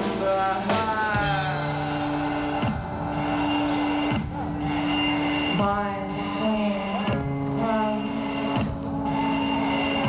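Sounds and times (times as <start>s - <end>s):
live rock band instrumental: 0.0s - 10.0s.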